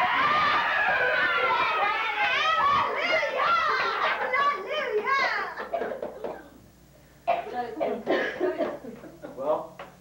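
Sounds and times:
high voices laughing and talking: 1.0s - 6.6s.

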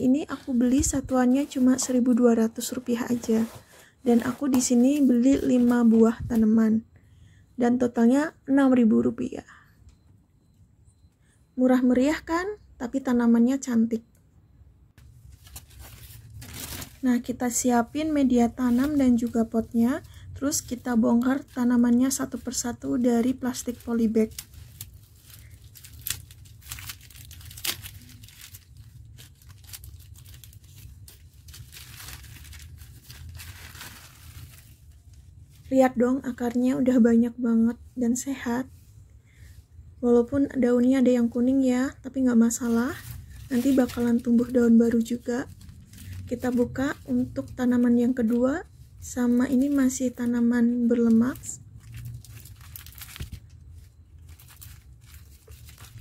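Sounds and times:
plastic bag crinkling and tearing: 15.4s - 17.6s, 20.6s - 35.1s, 42.6s - 48.4s, 49.4s - 56.0s.

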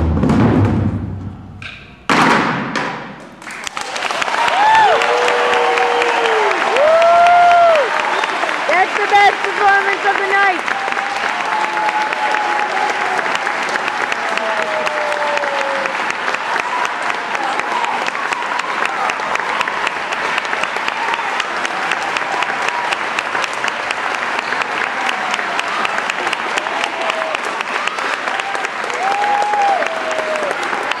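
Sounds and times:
audience applauding: 3.4s - 31.0s
voices over clapping: 3.5s - 31.0s.

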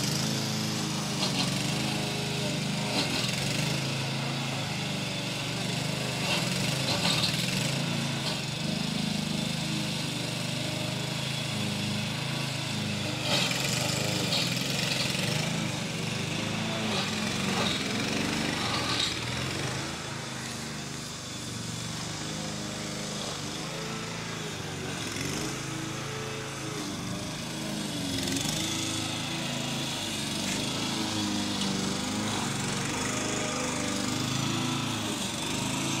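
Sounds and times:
lawn mower cutting grass: 0.0s - 36.0s.

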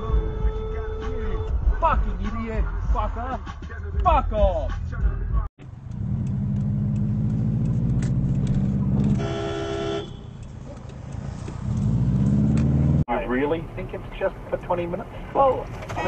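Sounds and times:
car engine accelerating: 5.6s - 9.3s, 10.4s - 13.9s
car horn: 9.0s - 10.4s.

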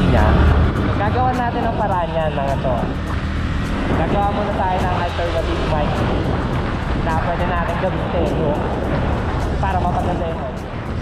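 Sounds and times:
motorcycle engine running: 0.0s - 11.0s
wind rush on microphone: 0.0s - 11.0s.

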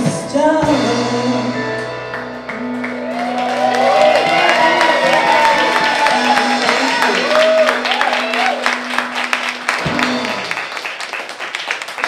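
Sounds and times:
live band holding a note: 0.0s - 11.2s
audience cheering and whooping: 2.8s - 10.5s
applause: 2.8s - 12.0s.

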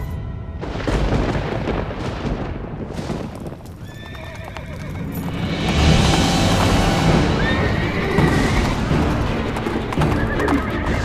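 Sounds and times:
dramatic background music: 0.0s - 2.6s, 4.7s - 11.0s
horse whinnying: 3.8s - 5.4s, 7.2s - 11.0s.

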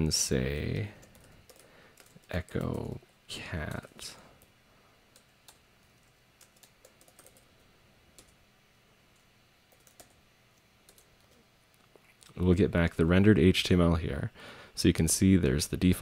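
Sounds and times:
computer keyboard keystrokes: 0.6s - 3.0s, 5.1s - 7.5s, 8.2s - 8.4s, 9.2s - 10.2s, 10.9s - 11.4s.

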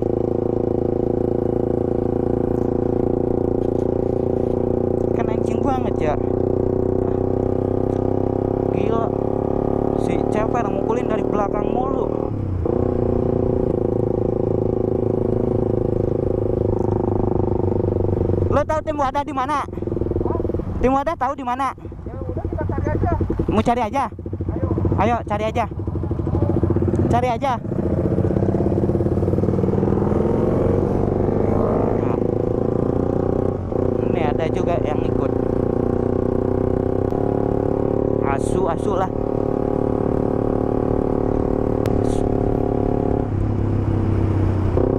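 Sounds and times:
motorcycle engine running steadily: 0.0s - 44.9s.

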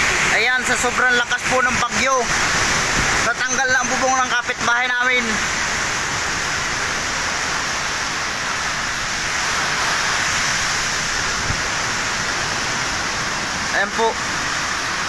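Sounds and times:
heavy rain: 0.0s - 15.0s
strong wind: 0.0s - 15.0s.

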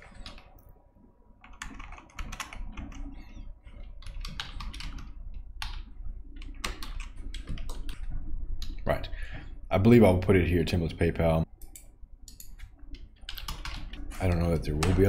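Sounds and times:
computer keyboard typing: 0.0s - 0.7s, 1.4s - 8.8s, 11.6s - 15.0s.

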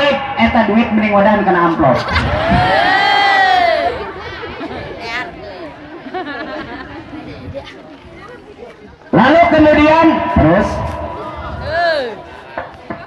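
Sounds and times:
audience laughing and calling out: 1.7s - 9.2s, 10.9s - 13.0s
scattered chatter and laughter: 1.7s - 13.0s.

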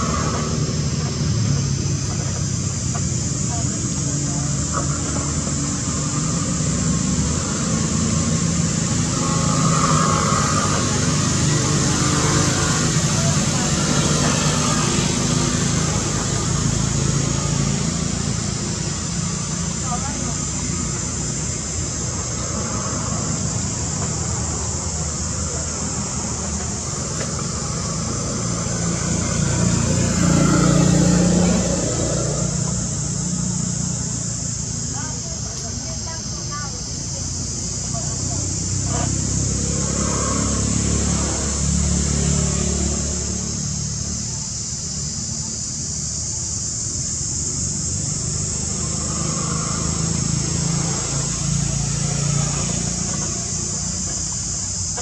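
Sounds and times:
high steady hiss: 0.0s - 55.0s
people's voices: 0.0s - 55.0s
traffic-like hum: 0.0s - 55.0s.

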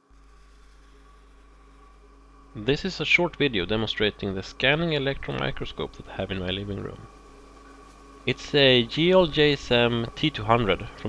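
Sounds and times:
faint low electrical hum: 0.0s - 11.0s
light hiss: 0.2s - 11.0s.

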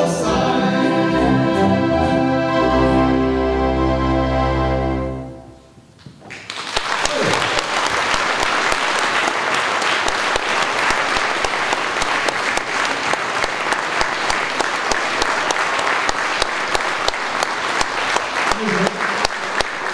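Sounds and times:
audience applauding: 6.2s - 19.9s.

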